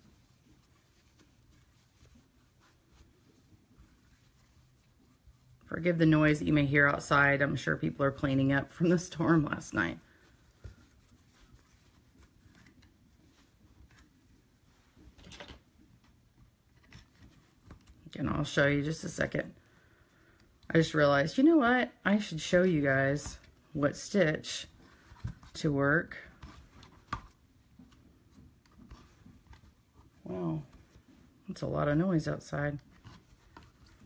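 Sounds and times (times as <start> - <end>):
soft rustle: 0.0 - 21.5, 22.2 - 34.0.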